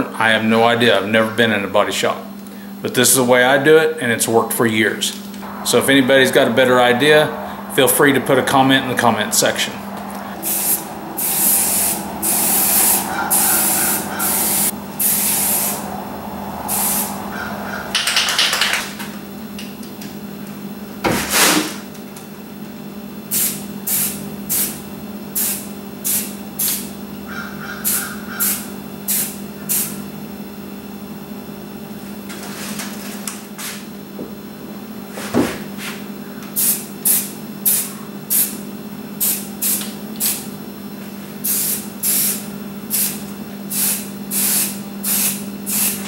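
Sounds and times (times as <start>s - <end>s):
aerosol spray can spraying: 10.4s - 15.8s, 41.5s - 46.0s.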